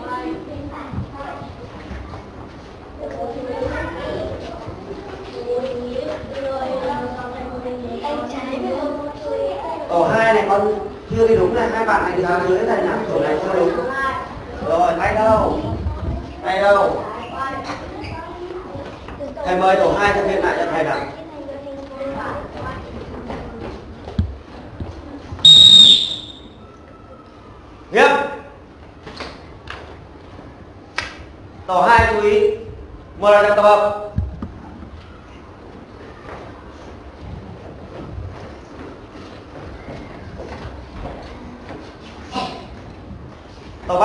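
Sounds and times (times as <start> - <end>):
faint children's voices: 0.0 - 25.4, 26.4 - 28.8
low rumbling background noise: 0.0 - 44.0
sharp whistle blast: 25.4 - 26.7.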